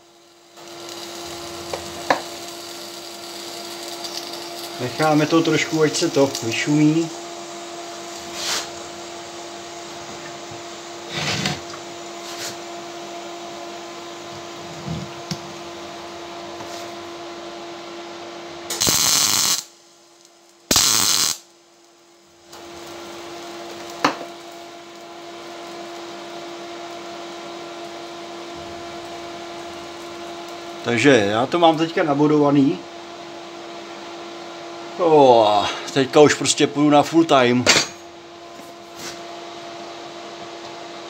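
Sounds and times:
welding arc crackle: 0.0s - 9.1s, 18.7s - 32.2s
welding machine humming: 0.0s - 40.7s.

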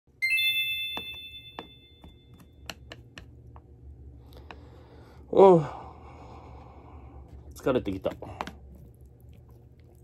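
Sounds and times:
bell-like ding: 0.2s - 2.3s.

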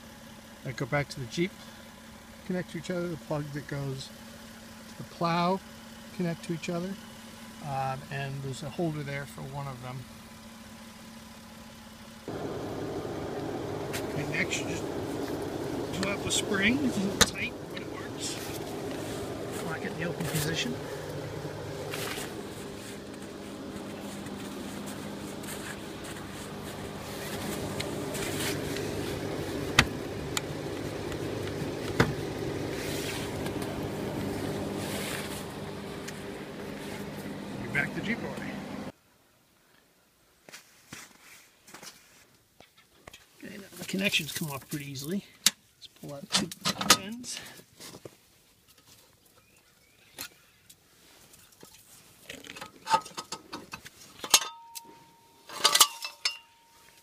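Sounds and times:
engine idling: 0.0s - 38.9s.

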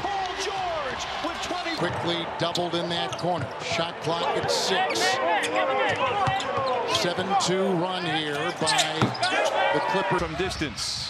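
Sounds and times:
commentator talking: 1.3s - 6.3s.

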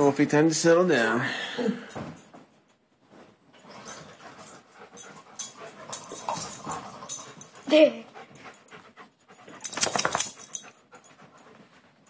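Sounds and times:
dog panting: 3.6s - 12.0s.

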